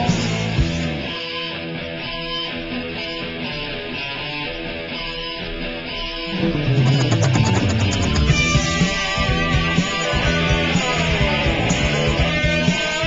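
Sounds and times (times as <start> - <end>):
bass and drums: 0.0 - 1.2, 6.3 - 13.0
guitars playing rock: 0.0 - 13.0.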